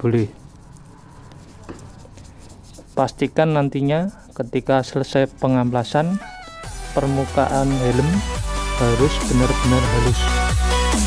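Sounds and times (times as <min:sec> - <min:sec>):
wet sandpaper scrubbing: 0:00.0 - 0:11.0.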